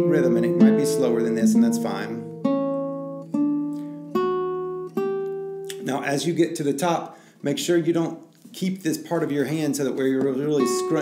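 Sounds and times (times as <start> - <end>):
classical guitar notes plucked: 0.0 - 6.0, 10.2 - 11.0.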